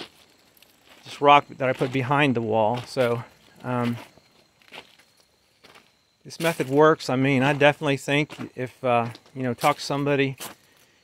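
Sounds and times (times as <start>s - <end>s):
footsteps on gravel and leaves: 0.0s - 11.0s.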